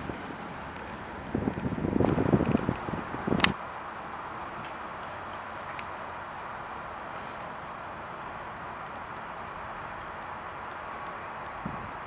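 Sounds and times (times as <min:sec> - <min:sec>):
faint outdoor hiss: 0:00.0 - 0:12.0
wind buffeting microphone: 0:00.0 - 0:12.0.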